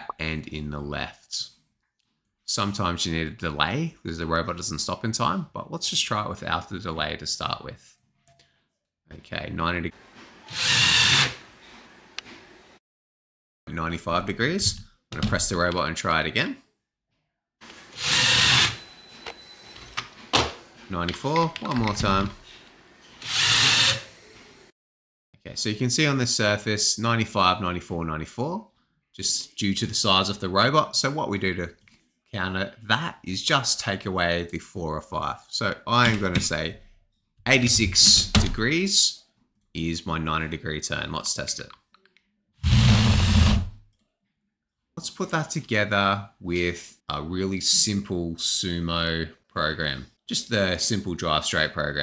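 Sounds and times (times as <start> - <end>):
robot motors whirring: 10.5 - 11.4, 18.0 - 18.8, 23.2 - 24.6.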